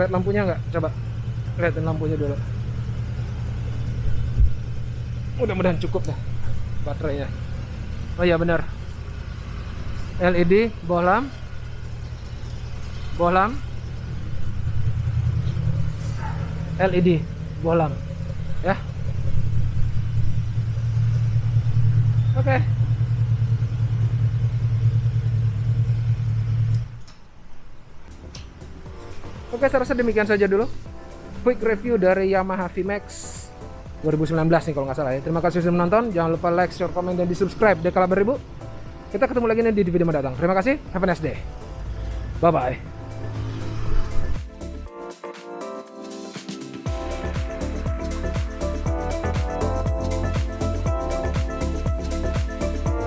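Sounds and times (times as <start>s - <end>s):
motorcycle engine idling: 0.0s - 27.0s, 28.1s - 43.6s, 46.9s - 53.0s.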